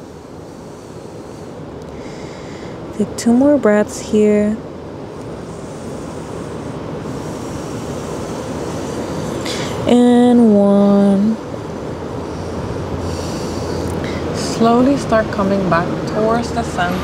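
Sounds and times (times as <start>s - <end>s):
woman breathing: 0.0s - 2.9s, 5.1s - 9.9s, 12.0s - 14.5s
steady rushing noise: 0.0s - 17.0s.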